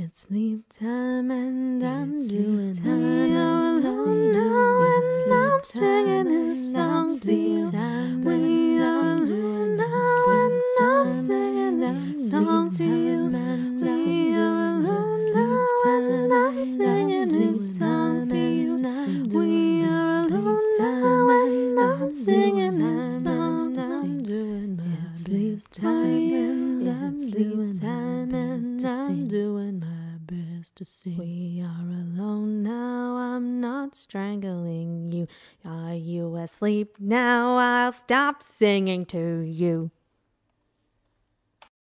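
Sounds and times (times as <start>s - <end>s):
people humming in harmony: 2.8s - 24.2s.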